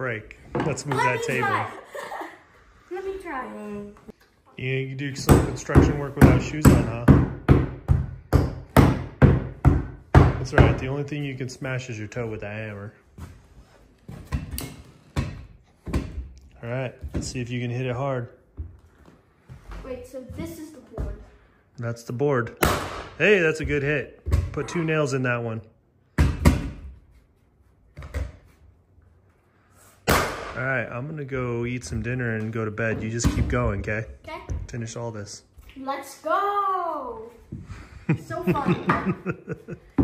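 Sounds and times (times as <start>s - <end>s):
rubber mallet striking floorboard: 5.2s - 10.8s.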